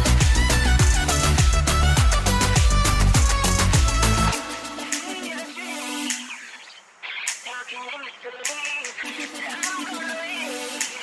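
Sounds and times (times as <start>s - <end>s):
dance music: 0.0s - 11.0s.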